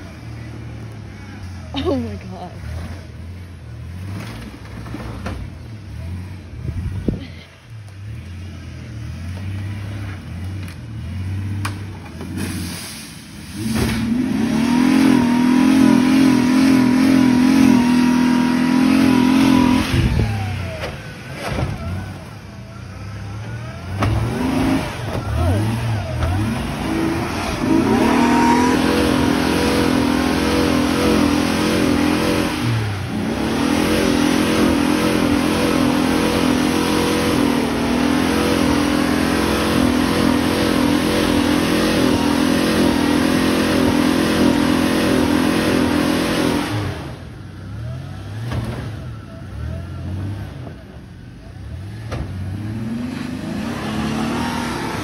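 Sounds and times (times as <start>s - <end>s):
engine revving under heavy load: 0.0s - 55.0s.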